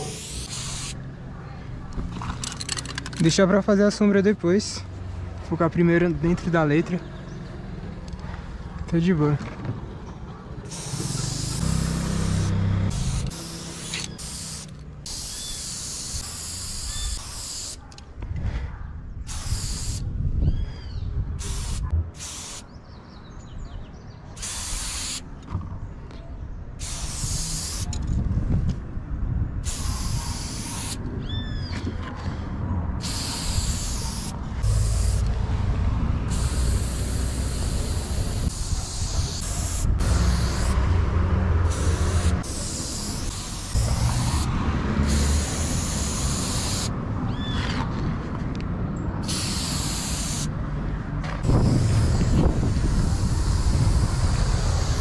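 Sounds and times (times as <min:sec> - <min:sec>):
spray-paint can hissing: 0:00.0 - 0:01.0, 0:10.7 - 0:17.8, 0:19.3 - 0:20.0, 0:21.4 - 0:22.6, 0:24.4 - 0:25.2, 0:26.8 - 0:27.9, 0:29.6 - 0:31.0, 0:33.0 - 0:35.4, 0:36.3 - 0:40.8, 0:41.6 - 0:46.9, 0:49.2 - 0:50.5, 0:51.4 - 0:55.0.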